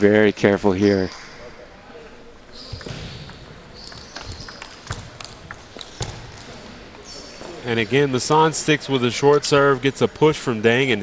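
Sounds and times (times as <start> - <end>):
table tennis ball clicking: 2.7 - 6.6.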